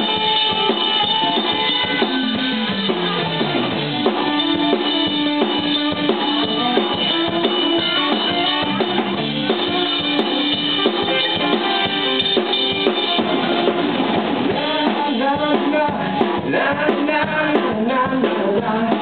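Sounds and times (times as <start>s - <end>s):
drum kit beat: 0.0s - 19.0s
electric bass: 0.0s - 19.0s
electric guitar: 0.0s - 19.0s.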